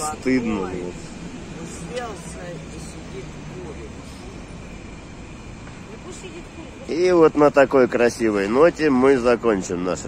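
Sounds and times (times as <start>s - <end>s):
distant traffic hum: 0.0s - 10.0s.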